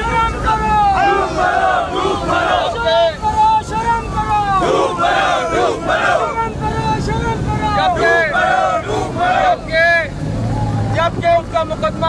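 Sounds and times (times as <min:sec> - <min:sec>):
crowd shouting: 0:00.0 - 0:10.1.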